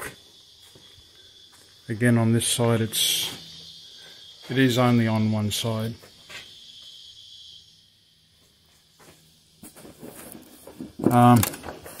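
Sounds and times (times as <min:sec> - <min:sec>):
high-pitched insect chirring: 0:00.0 - 0:09.8.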